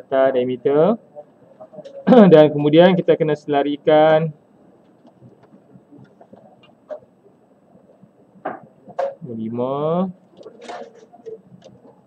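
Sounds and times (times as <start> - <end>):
plastic taps and rustles on paper: 4.8 - 7.0.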